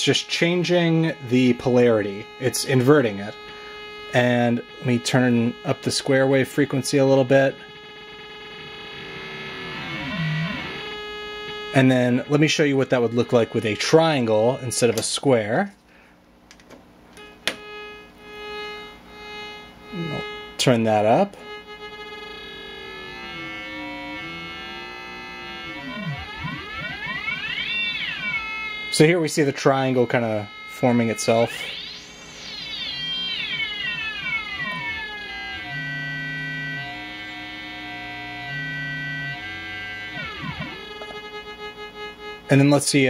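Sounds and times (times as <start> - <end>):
swooping sideband tones: 0.0 - 15.6, 17.6 - 43.0
buzzy synthesizer tone: 0.0 - 15.8, 17.2 - 43.0.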